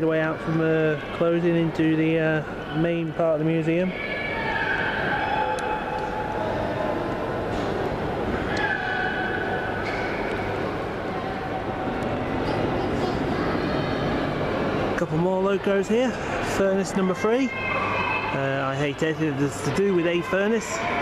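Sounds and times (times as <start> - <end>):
faint voices: 0.0 - 21.0.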